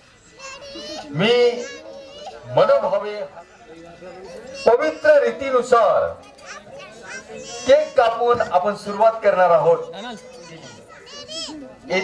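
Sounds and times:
children's voices: 0.2s - 2.6s, 4.1s - 5.3s, 6.1s - 12.0s.

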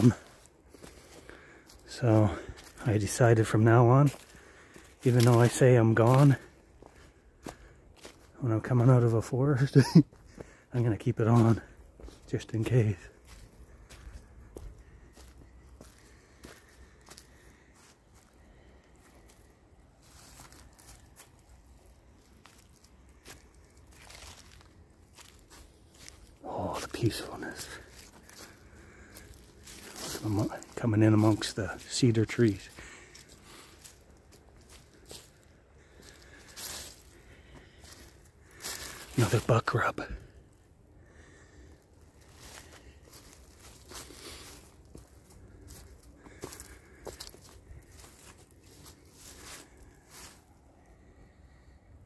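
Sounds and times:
footsteps on dry leaves: 0.0s - 51.0s.

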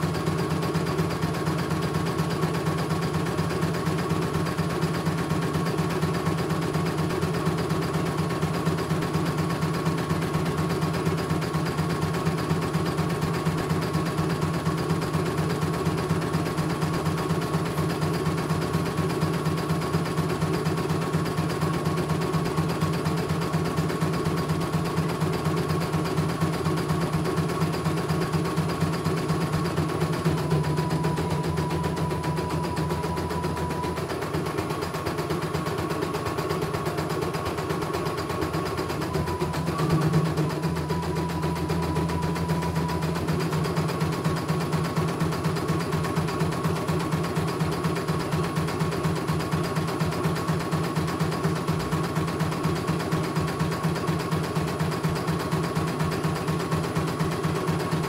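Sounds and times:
steady motor hum: 0.0s - 50.6s.

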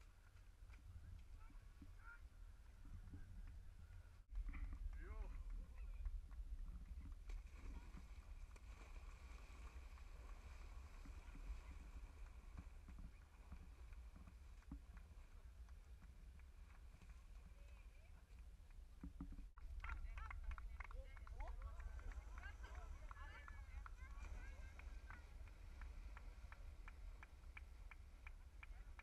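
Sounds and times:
people wading through muddy water: 0.0s - 29.0s
wind rumbling on microphone: 0.0s - 29.0s.

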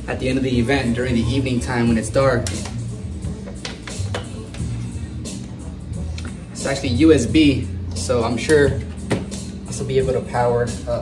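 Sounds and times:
background music with low beat: 0.0s - 11.0s.

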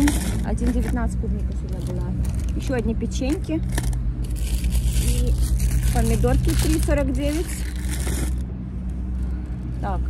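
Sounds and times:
plastic packaging rustling: 0.0s - 8.4s
steady low hum: 0.0s - 10.0s.

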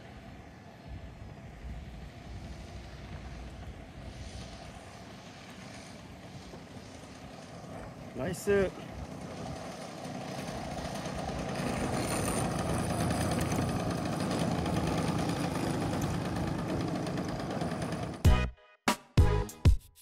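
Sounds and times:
model airplane engine idling: 0.0s - 18.3s
upbeat music with a beat: 18.3s - 20.0s.

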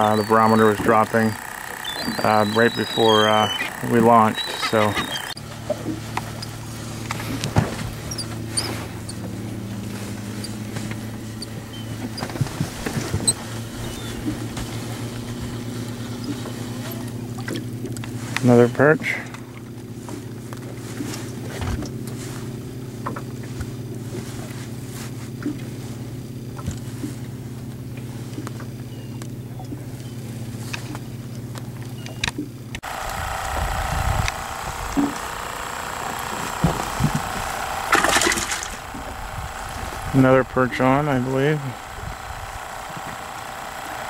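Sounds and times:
boat engine humming: 0.0s - 44.0s.

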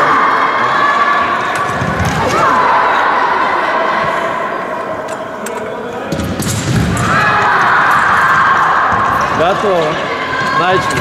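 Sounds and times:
steady high-pitched hall noise: 0.0s - 11.0s.

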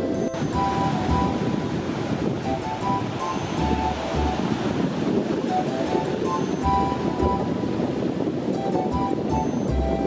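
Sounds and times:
background music with low bass: 0.0s - 10.0s
ocean surf breaking: 0.0s - 10.0s.

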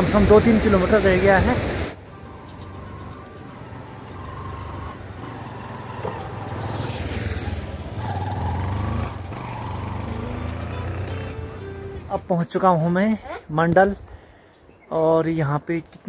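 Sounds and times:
background music: 1.0s - 5.9s, 8.5s - 12.8s
motorcycle passing by: 1.0s - 12.3s.

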